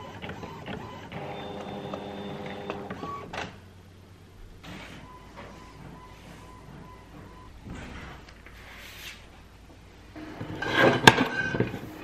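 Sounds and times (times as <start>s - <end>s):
printer whirring: 0.0s - 3.6s, 4.6s - 8.3s, 10.2s - 12.0s.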